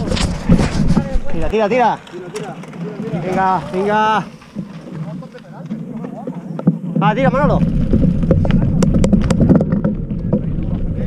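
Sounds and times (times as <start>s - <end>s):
bike tyres crunching on gravel: 0.0s - 11.0s.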